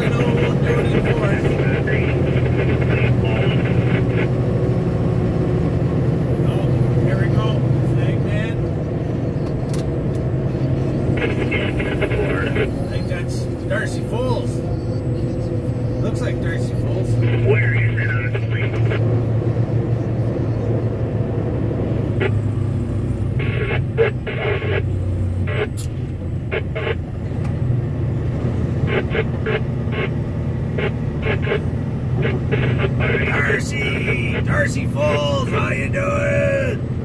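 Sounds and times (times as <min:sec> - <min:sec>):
truck engine and road drone: 0:00.0 - 0:37.0.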